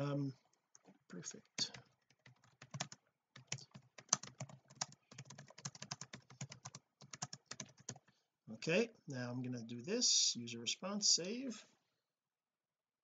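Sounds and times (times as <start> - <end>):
typing on keyboard: 1.6 - 8.1.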